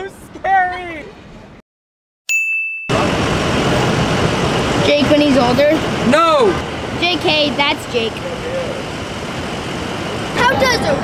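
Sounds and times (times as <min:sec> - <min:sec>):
city street traffic: 0:00.0 - 0:01.6, 0:02.3 - 0:11.0.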